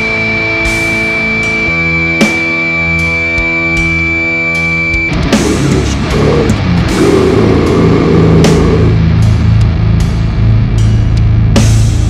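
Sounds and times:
distorted guitar riffing: 0.0s - 11.5s
drums: 0.0s - 12.0s.

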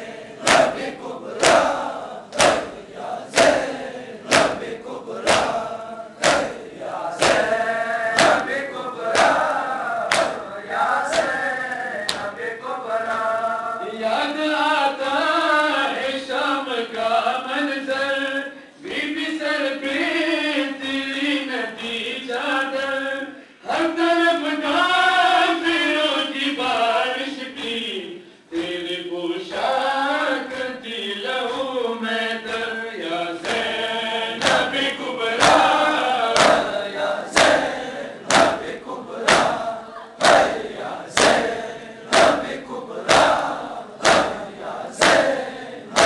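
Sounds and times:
men chanting a lament in chorus: 0.0s - 46.0s
hand slapping chest: 0.4s - 7.6s, 8.2s - 9.5s, 10.1s - 10.4s, 11.1s - 11.4s, 34.4s - 34.8s, 35.4s - 39.6s, 40.2s - 46.0s.

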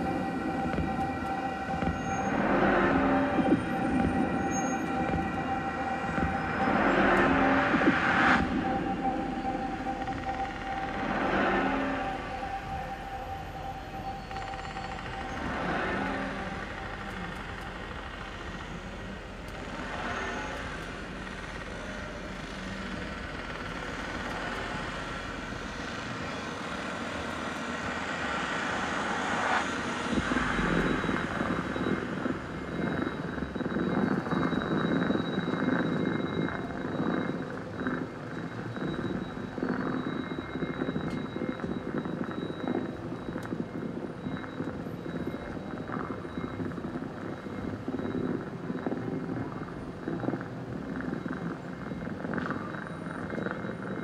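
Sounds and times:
crackling rumble over loudspeakers: 0.0s - 54.0s.

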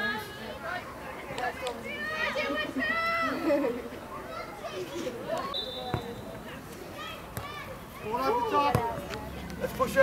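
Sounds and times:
referee's whistle blast: 5.5s - 6.3s
football being kicked: 8.6s - 9.1s.

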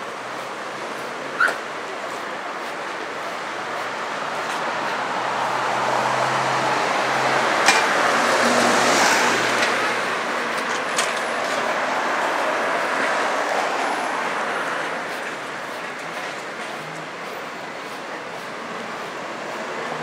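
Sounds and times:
steady traffic hum: 0.0s - 20.0s
vehicle passing: 2.1s - 20.0s.

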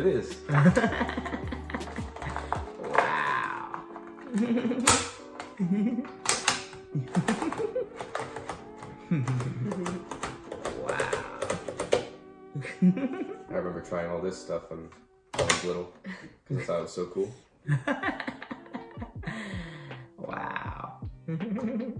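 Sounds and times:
background music: 0.0s - 21.9s.

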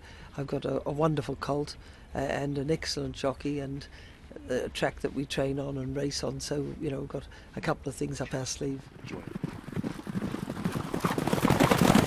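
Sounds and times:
galloping horse hoofbeats: 8.9s - 12.0s.

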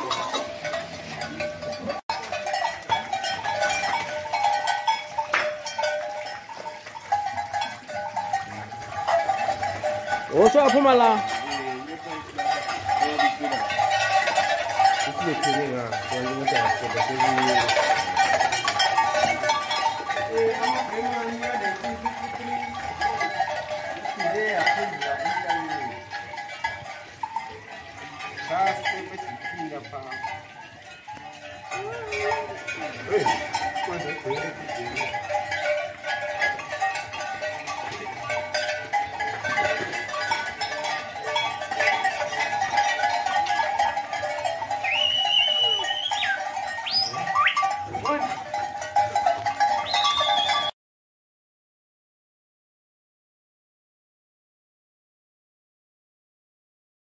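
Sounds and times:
voices calling: 0.0s - 50.7s
sharp rising whistles: 44.8s - 47.6s, 49.8s - 50.7s.

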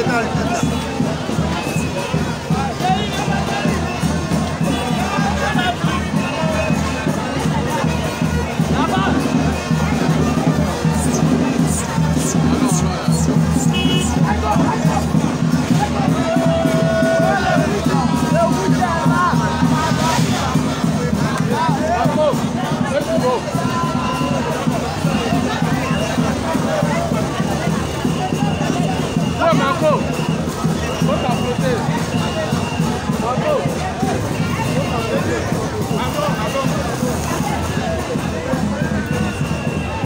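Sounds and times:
crowd talking and calling out: 0.0s - 40.0s
loud music with pulsing bass: 10.4s - 14.8s.

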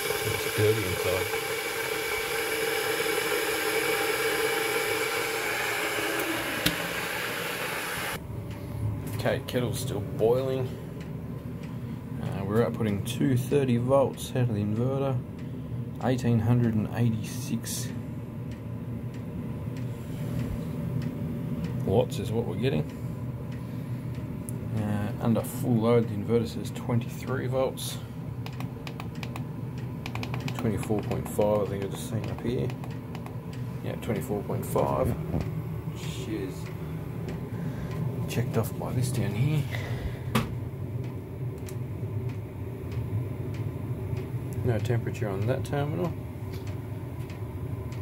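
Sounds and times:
inverter humming: 0.0s - 48.0s.

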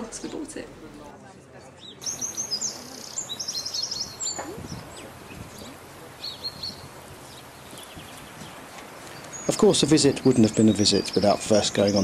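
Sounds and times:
outdoor background hiss: 0.0s - 12.0s
small birds chirping: 1.5s - 12.0s.

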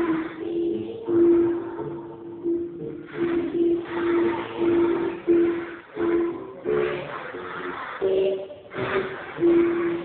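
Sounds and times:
children singing in unison: 0.0s - 10.0s.

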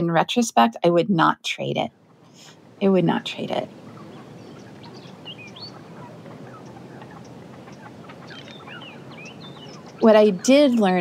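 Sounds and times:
outdoor ambience hush: 0.0s - 11.0s
birds chirping: 1.9s - 11.0s.

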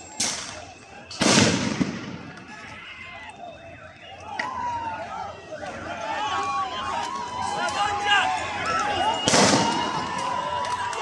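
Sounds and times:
crowd shouting: 0.0s - 11.0s
loud bang: 1.2s - 2.3s.

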